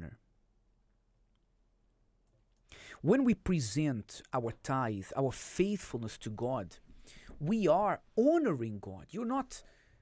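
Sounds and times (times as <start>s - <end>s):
person speaking: 3.0s - 9.7s.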